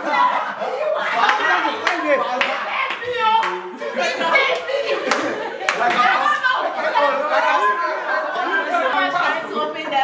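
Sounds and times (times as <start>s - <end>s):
excited overlapping voices: 0.0s - 10.0s
people laughing: 0.0s - 10.0s.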